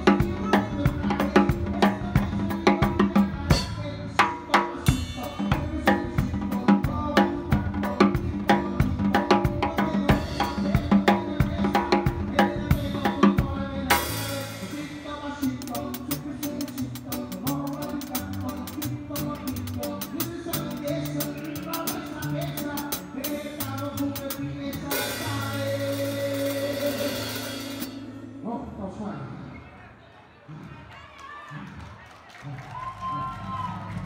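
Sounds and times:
drum kit playing: 0.0s - 28.4s
bass guitar notes: 0.0s - 29.5s.

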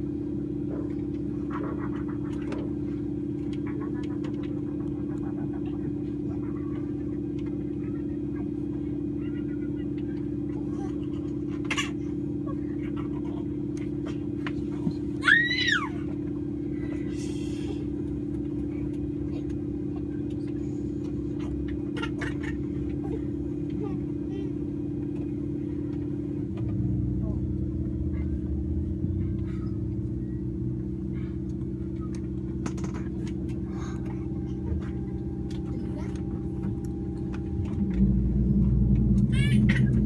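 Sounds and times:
turboprop engines droning: 0.0s - 40.0s.

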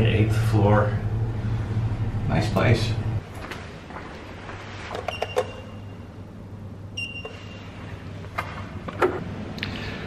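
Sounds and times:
scanner beeping: 5.1s - 6.2s, 6.9s - 7.7s.

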